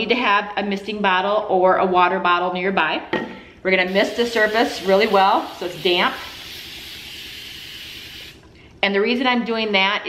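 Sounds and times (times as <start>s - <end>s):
spray bottle hissing: 3.9s - 8.4s.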